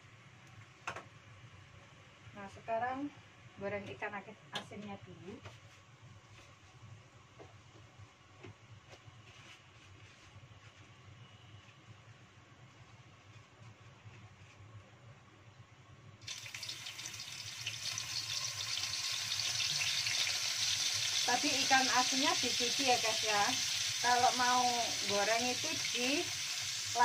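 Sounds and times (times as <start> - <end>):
fish sizzling in hot oil: 16.2 - 27.0.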